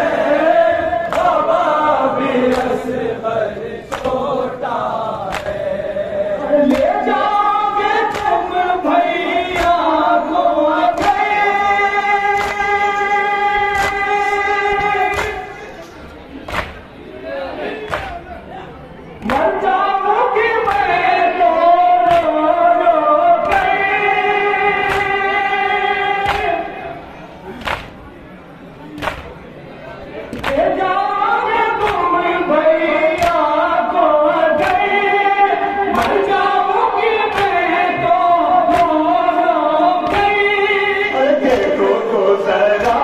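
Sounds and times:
men chanting in unison: 0:00.0 - 0:15.8, 0:19.2 - 0:27.7, 0:29.9 - 0:43.0
hand slaps on chest: 0:26.3 - 0:26.5, 0:29.0 - 0:29.3.

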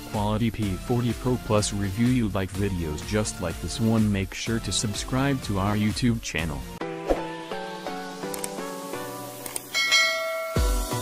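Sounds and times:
notification bell chime: 0:09.7 - 0:11.0.

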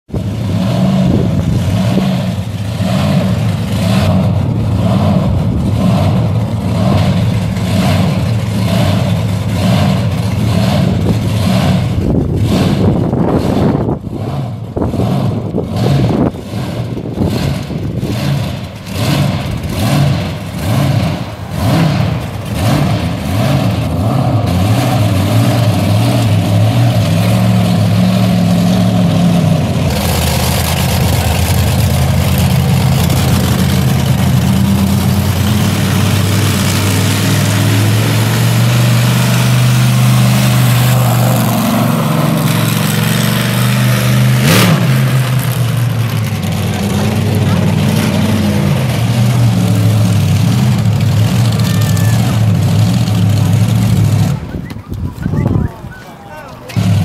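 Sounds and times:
monster truck engine idling and revving: 0:00.0 - 0:57.0.

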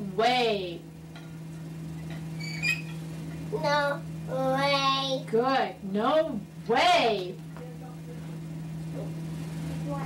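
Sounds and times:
low electrical hum: 0:00.0 - 0:10.0.

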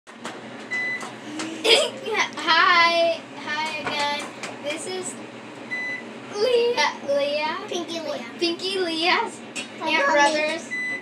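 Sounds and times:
young children talking: 0:06.4 - 0:10.7.

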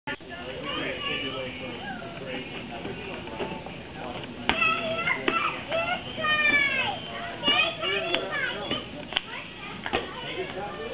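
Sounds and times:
children calling and squealing: 0:00.1 - 0:02.5, 0:04.4 - 0:10.9.

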